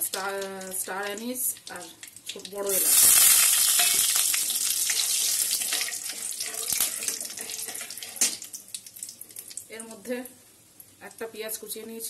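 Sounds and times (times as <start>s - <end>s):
oil crackles and pops: 0.0s - 9.7s
spices sizzling in hot oil: 0.0s - 11.1s
metal spatula stirring: 2.9s - 8.5s.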